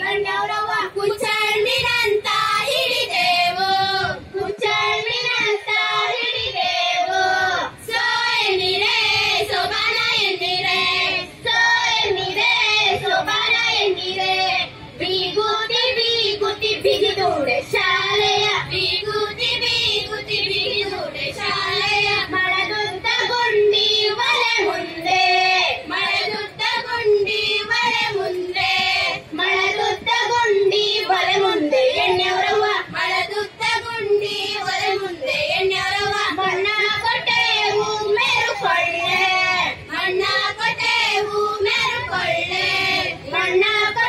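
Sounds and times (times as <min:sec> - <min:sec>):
child and women singing folk song: 0:00.0 - 0:44.0.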